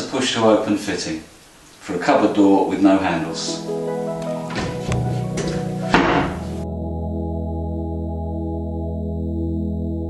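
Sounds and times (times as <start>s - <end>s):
background music: 2.8s - 10.0s
cupboard door latch knock: 4.5s - 6.5s.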